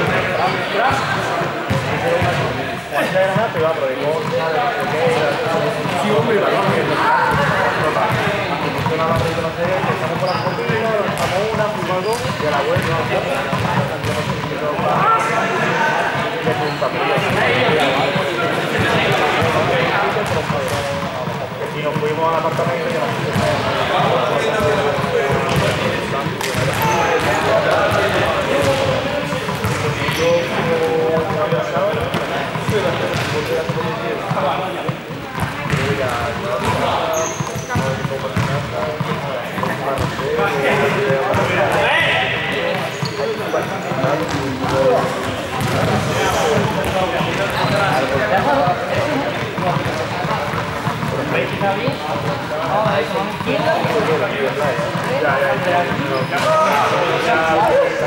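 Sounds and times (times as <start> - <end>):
people talking and calling out: 0.0 - 58.0
ball bouncing on wooden floor: 27.9 - 40.2, 43.9 - 54.1.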